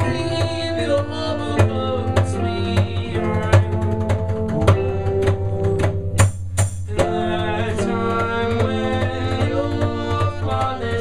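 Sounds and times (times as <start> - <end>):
acoustic bass guitar: 0.0 - 11.0
acoustic guitar: 0.0 - 11.0
steady drum beat: 0.0 - 11.0.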